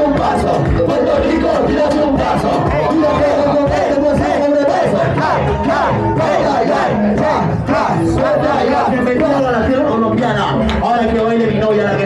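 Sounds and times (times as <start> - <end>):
lively crowd: 0.0 - 12.0
men rapping into microphones: 0.0 - 12.0
music: 0.0 - 12.0.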